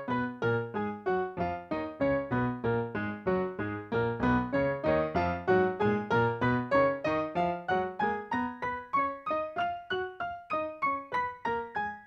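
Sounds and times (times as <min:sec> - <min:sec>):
piano playing a scale in octaves: 0:00.0 - 0:12.0.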